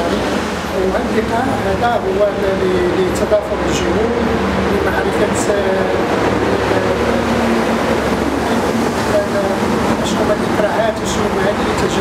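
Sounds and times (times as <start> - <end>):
faint man's voice: 0.0 - 12.0
loud broadband noise: 0.0 - 12.0.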